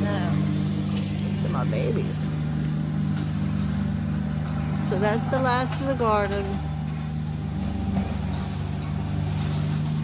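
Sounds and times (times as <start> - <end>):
riding lawn mower engine running: 0.0 - 10.0.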